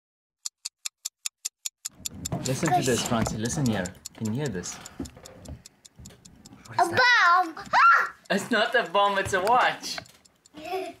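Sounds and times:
stopwatch ticking: 0.4 - 11.0.

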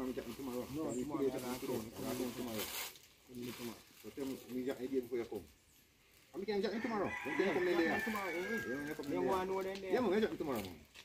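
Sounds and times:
people talking: 0.0 - 2.7, 3.3 - 5.4, 6.4 - 10.8
rooster crowing: 6.6 - 9.4.

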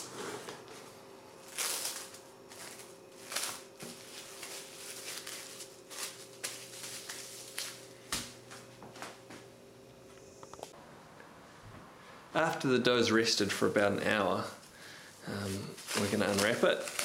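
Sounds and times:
cling film crinkling: 1.4 - 7.9, 15.4 - 17.0.

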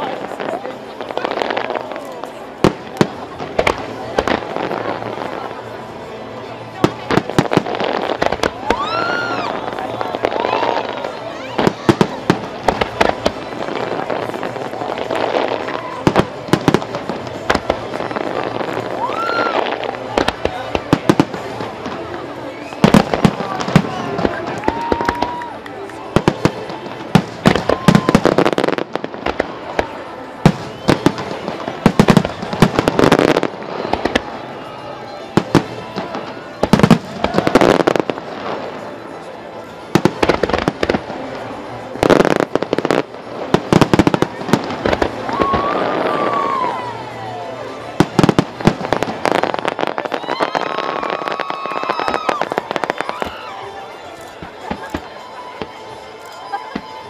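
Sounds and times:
fireworks bursting: 0.0 - 57.0
fireworks crackle: 0.0 - 57.0.

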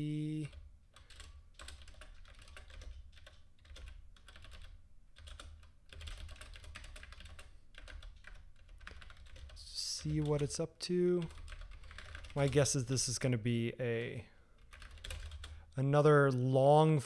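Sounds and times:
computer keyboard typing: 0.4 - 10.6, 11.2 - 12.8, 14.6 - 15.7.

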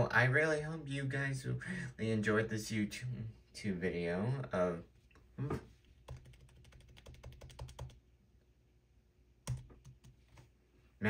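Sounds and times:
rapid keyboard keystrokes: 6.0 - 8.0, 9.4 - 10.5.

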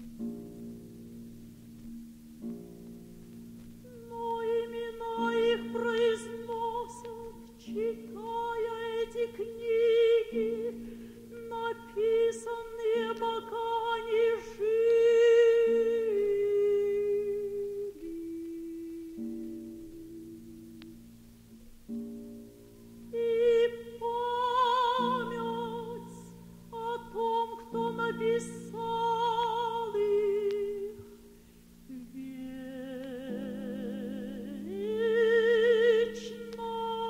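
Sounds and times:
soprano singing with vibrato: 3.8 - 21.0, 23.1 - 31.3, 31.9 - 37.0.

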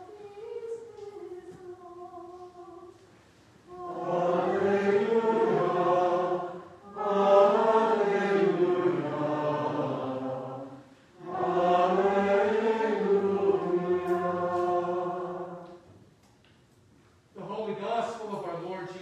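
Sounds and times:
congregation and choir singing hymn: 0.0 - 3.0, 3.7 - 15.9.

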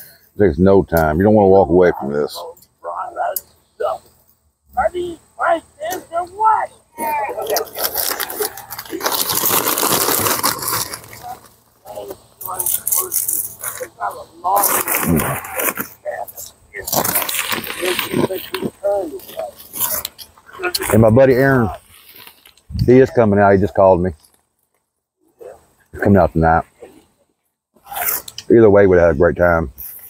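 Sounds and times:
plastic snack bag crinkling: 7.0 - 13.9, 16.8 - 20.2
corn chips crackling: 7.0 - 21.0.

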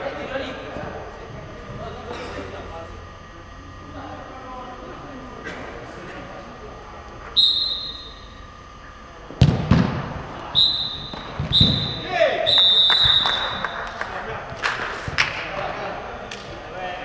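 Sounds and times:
referee's whistle blasts: 7.4 - 8.4, 10.5 - 13.9
ball kicked hard: 9.4 - 10.1.

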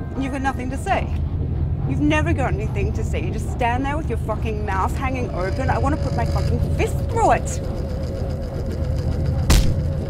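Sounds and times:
low rumble: 0.0 - 10.0
sharp impact: 9.5 - 9.9.

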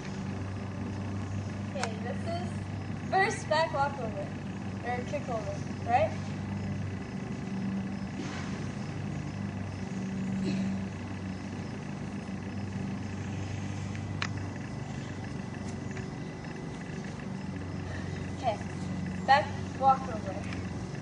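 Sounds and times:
engine humming: 0.0 - 21.0.

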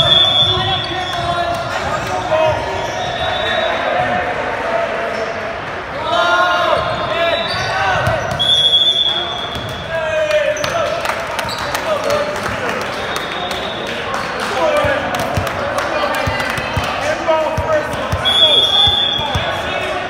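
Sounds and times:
referee's whistle blast: 0.0 - 1.3, 7.1 - 9.8, 18.2 - 19.5
players shouting and cheering: 0.0 - 20.0.

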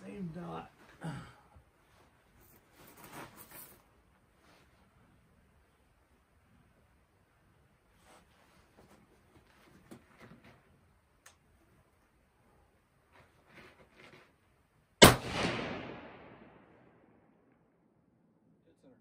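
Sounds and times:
faint clicks and rustles: 1.8 - 14.7
rifle shot echoing: 15.0 - 17.4.

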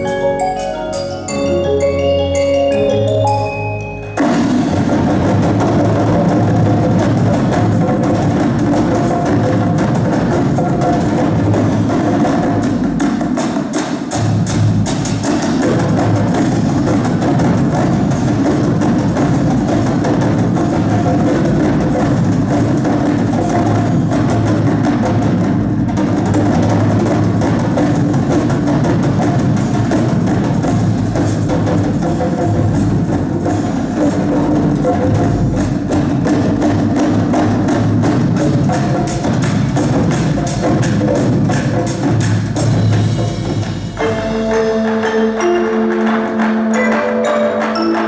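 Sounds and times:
mallet percussion: 0.0 - 48.0
snare drum roll: 4.2 - 46.8.

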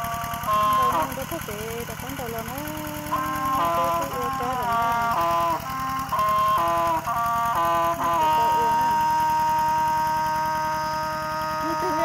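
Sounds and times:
tractor engine chugging: 0.0 - 12.0
melodic tune: 2.7 - 12.0.

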